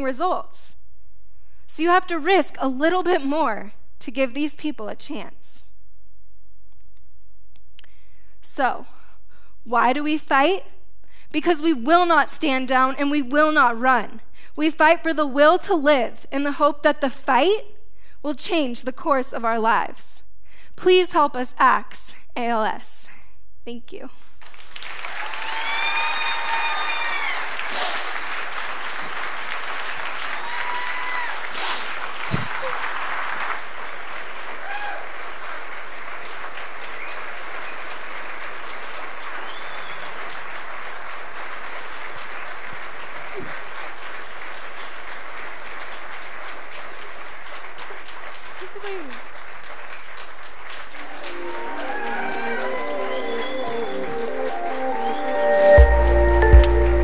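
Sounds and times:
audience applauding: 24.4s - 57.0s
whoops and cheers: 25.1s - 27.7s, 30.2s - 31.6s, 34.6s - 35.2s, 51.0s - 55.3s.

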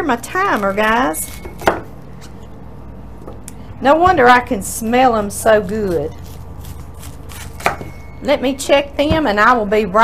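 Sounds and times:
knife cutting cabbage: 0.1s - 2.4s, 5.1s - 8.0s.

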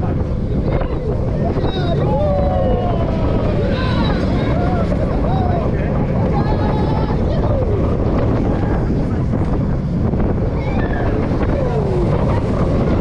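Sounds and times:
roller coaster rumbling on track: 0.0s - 13.0s
wind buffeting microphone: 0.0s - 13.0s
riders calling out: 0.5s - 9.0s.

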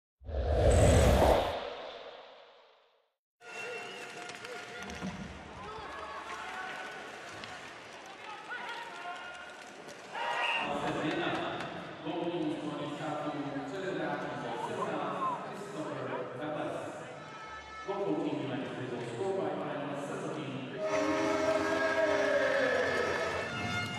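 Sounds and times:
crowd voices: 20.8s - 23.9s.

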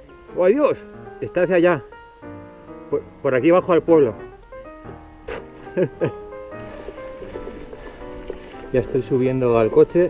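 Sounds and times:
background music held notes: 0.0s - 10.0s.

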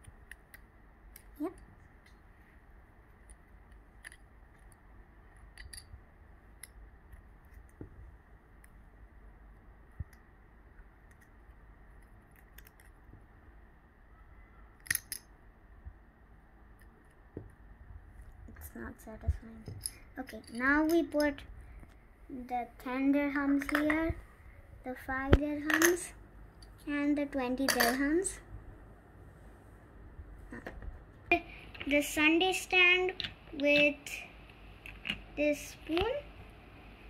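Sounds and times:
plastic clicks and snaps: 11.0s - 13.0s.

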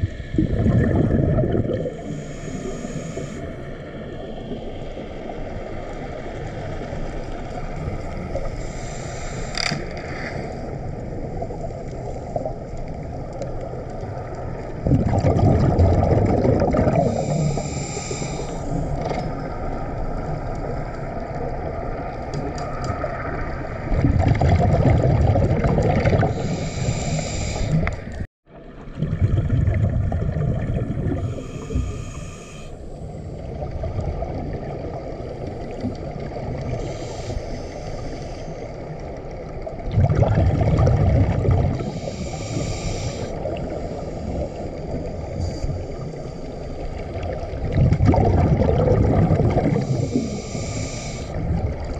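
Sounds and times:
bubbling regulator exhalations: 0.0s - 3.4s, 14.8s - 19.0s, 23.9s - 32.6s, 39.8s - 43.7s, 47.1s - 51.9s
underwater hiss: 0.0s - 12.7s, 16.0s - 21.4s, 25.9s - 28.3s, 30.9s - 33.6s, 35.2s - 39.1s, 41.2s - 51.8s.

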